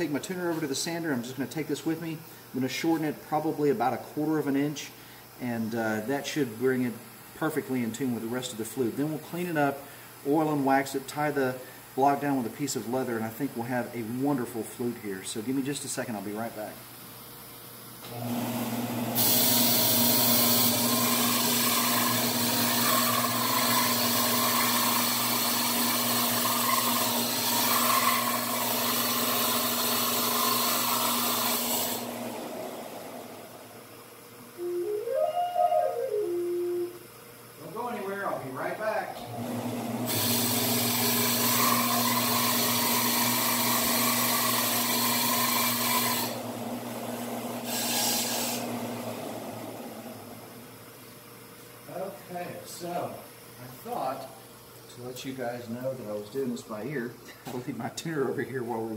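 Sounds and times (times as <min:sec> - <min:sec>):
electric sander grinding: 0:20.6 - 0:32.1, 0:40.1 - 0:46.4
flute playing: 0:34.6 - 0:37.1.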